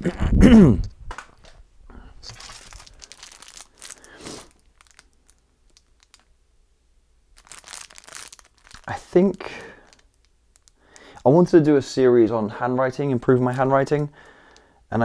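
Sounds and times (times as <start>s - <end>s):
plastic packaging crinkling: 2.2s - 6.4s, 7.3s - 11.3s.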